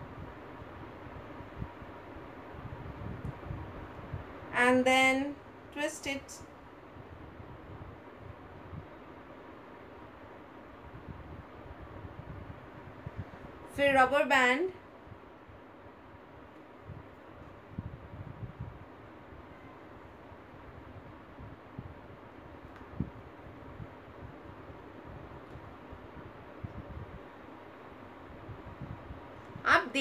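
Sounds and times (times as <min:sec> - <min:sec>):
faint room noise hiss: 0:00.0 - 0:30.0.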